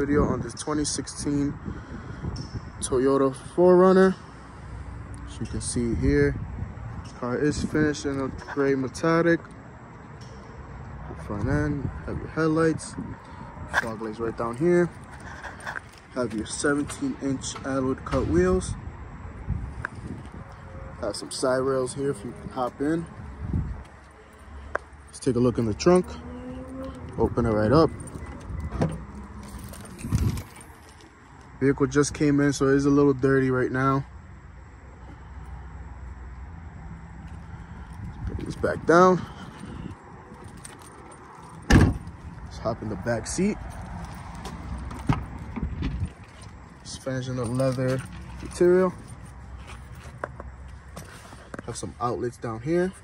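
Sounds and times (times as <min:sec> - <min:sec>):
soft footsteps on asphalt: 0:06.9 - 0:18.6, 0:19.4 - 0:31.6, 0:36.9 - 0:53.0.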